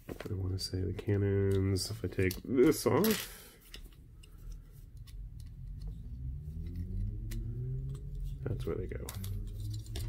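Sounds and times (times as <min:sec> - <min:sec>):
plastic parts clicking: 0:01.4 - 0:06.0
low hum rising in pitch: 0:04.1 - 0:10.0.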